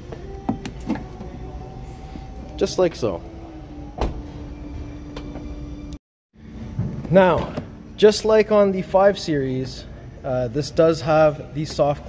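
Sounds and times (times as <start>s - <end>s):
low hum of trunk mechanism: 0.2s - 7.9s.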